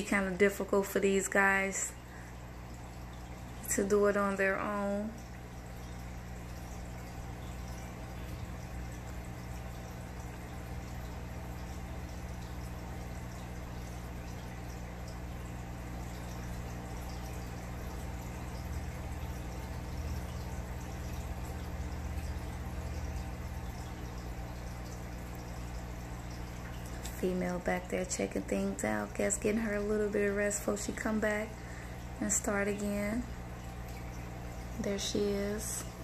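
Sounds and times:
aquarium water bubbling: 0:00.0 - 0:36.0
low steady hum: 0:00.0 - 0:36.0.

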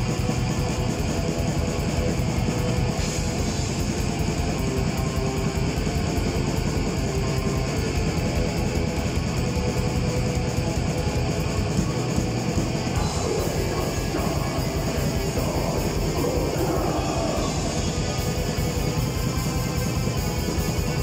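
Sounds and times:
metal band playing live: 0:00.0 - 0:21.0.

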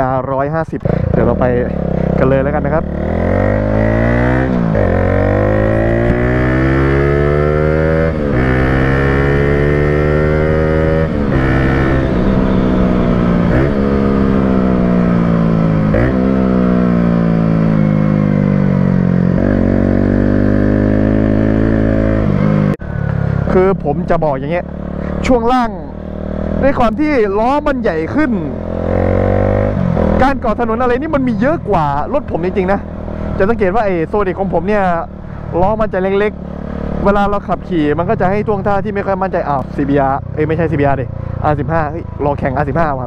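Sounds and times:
motorcycle revving through gears: 0:00.8 - 0:43.0.

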